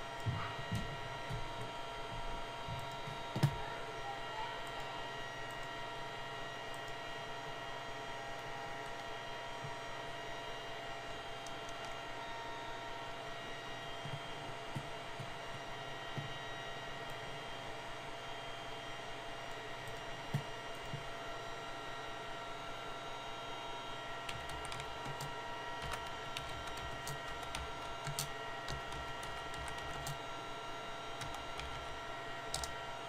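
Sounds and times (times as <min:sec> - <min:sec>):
electrical hum with faint tones: 0:00.0 - 0:33.0.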